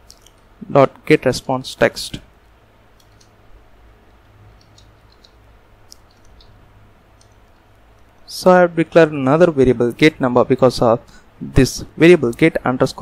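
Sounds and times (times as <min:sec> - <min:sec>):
low steady hum: 0:00.0 - 0:13.0
computer keyboard clicks: 0:03.0 - 0:03.4, 0:04.5 - 0:06.6.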